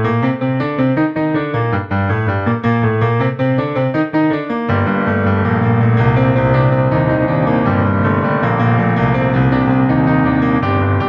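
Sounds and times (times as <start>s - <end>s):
digital piano melody: 0.0s - 11.0s.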